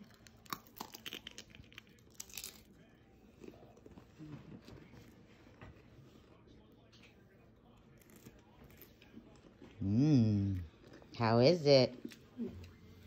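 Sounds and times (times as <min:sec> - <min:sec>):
chip crunching and chewing: 0:00.0 - 0:05.2, 0:06.8 - 0:09.8.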